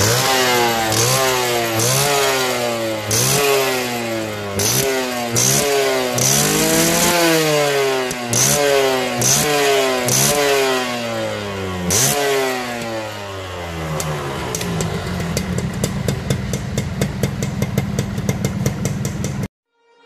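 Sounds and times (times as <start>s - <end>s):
motorcycle engine revving: 0.0s - 19.5s
exhaust popping: 13.7s - 19.5s.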